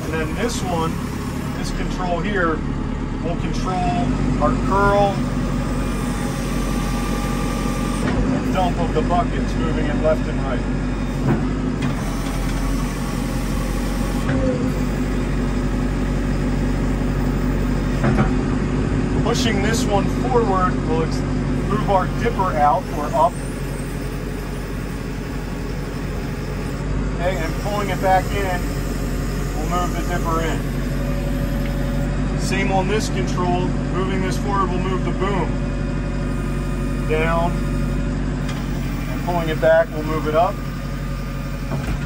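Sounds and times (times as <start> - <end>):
diesel engine running: 0.0 - 42.0
hydraulics working: 0.0 - 42.0.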